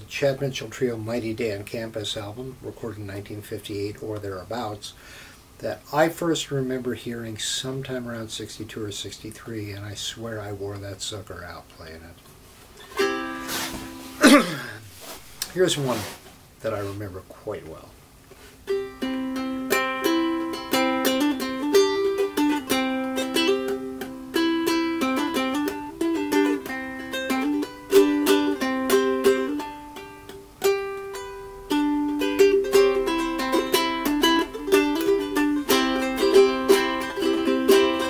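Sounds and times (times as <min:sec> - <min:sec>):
solo ukulele playing: 0:12.8 - 0:14.2, 0:18.7 - 0:38.0.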